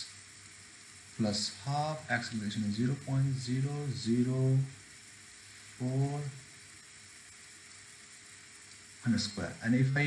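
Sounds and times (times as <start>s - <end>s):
faint room tone hiss: 0.0s - 10.0s.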